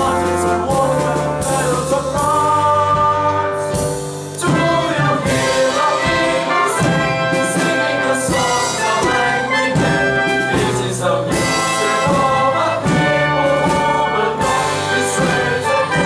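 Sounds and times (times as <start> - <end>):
brass-led orchestra playing: 0.0 - 16.0.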